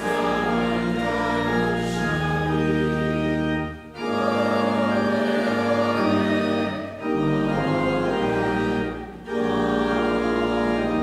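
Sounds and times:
church choir singing: 0.0s - 11.0s
organ: 0.0s - 11.0s.

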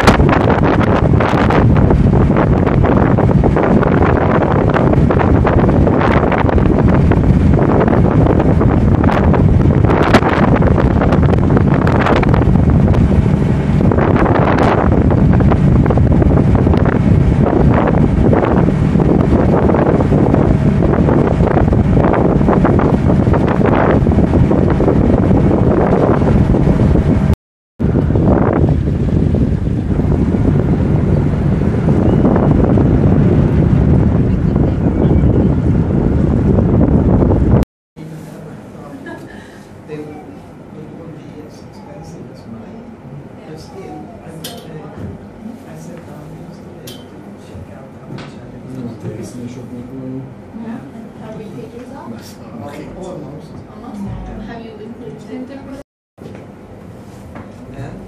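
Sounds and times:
wind buffeting microphone: 0.0s - 37.6s, 39.3s - 55.8s
boat engine drone: 0.0s - 55.8s
churning wake rushing: 0.0s - 55.8s.

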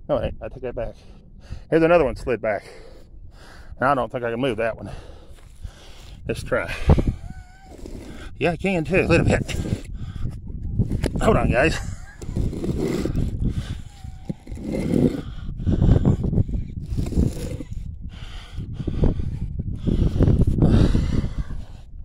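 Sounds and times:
man breathing and grunting: 2.5s - 3.8s, 4.7s - 22.0s
stone scraping on stone: 7.7s - 8.4s, 11.7s - 15.2s, 16.8s - 17.8s.

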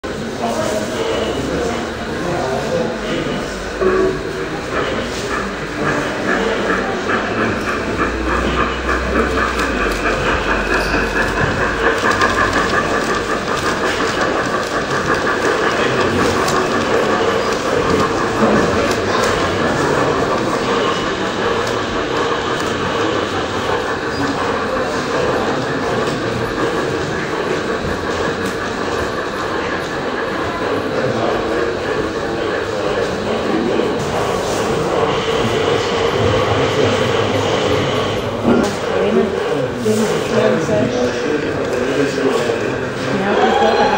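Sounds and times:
model train running: 0.0s - 43.9s.

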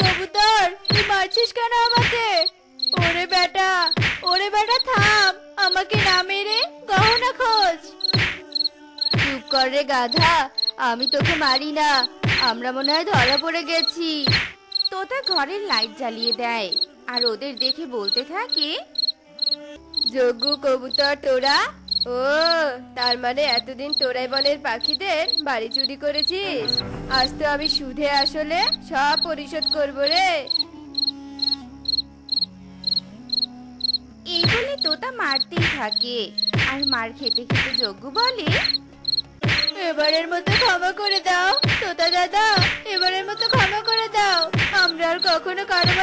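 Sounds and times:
crickets chirping: 0.0s - 46.0s
stick whacks: 4.0s - 4.2s, 8.1s - 8.4s, 9.1s - 9.4s, 14.3s - 14.6s, 36.5s - 36.8s, 41.6s - 41.9s.

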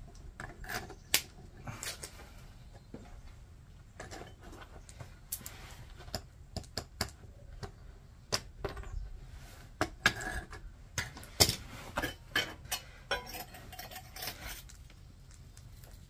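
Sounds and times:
metal tools clinking on bricks: 10.0s - 14.8s.

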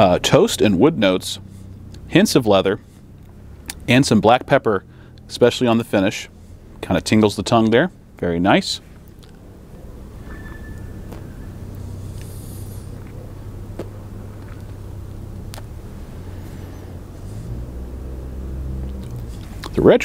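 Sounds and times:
low motor rumble: 0.0s - 20.0s.

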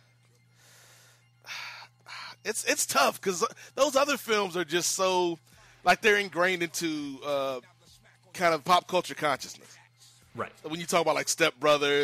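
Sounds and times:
man breathing in sharply: 0.6s - 1.9s
man speaking: 2.4s - 7.6s, 10.3s - 12.0s.

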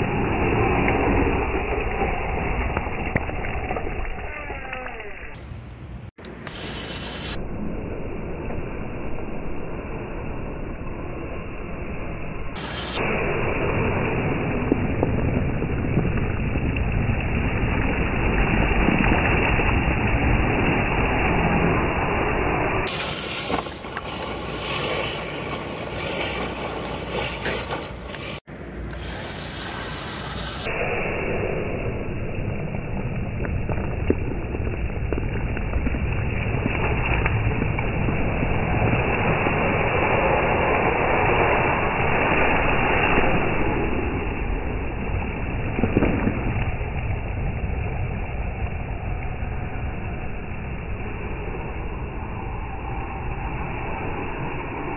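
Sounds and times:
water and mud splashing: 0.0s - 7.7s, 12.5s - 31.6s, 32.4s - 49.7s
water spray churning: 6.2s - 7.4s, 12.6s - 15.0s, 16.5s - 31.5s
tyres through water and gravel: 22.9s - 30.7s, 33.1s - 40.1s.

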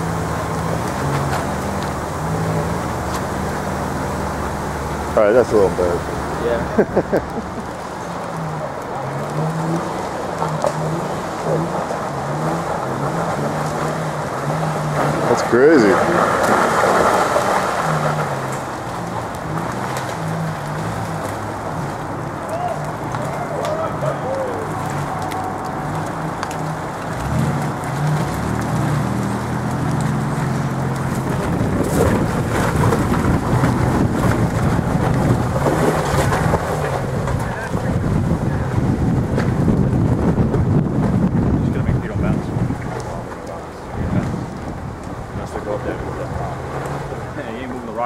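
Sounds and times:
truck engines at low speed: 0.0s - 48.0s
wind on microphone: 30.7s - 45.7s.

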